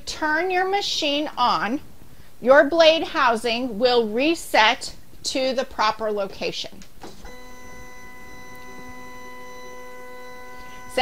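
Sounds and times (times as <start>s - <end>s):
stepper motor whine: 7.3s - 11.0s.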